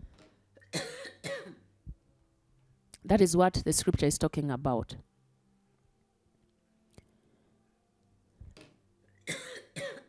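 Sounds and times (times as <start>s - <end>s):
woman clearing her throat: 0.7s - 1.6s, 9.3s - 10.0s
woman coughing: 0.7s - 1.6s, 9.3s - 10.0s.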